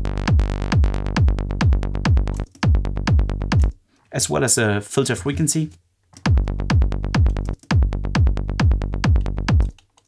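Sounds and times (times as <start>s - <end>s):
kick drum: 0.0s - 3.7s, 6.2s - 9.8s
techno synth bassline: 0.0s - 3.7s, 6.2s - 9.8s.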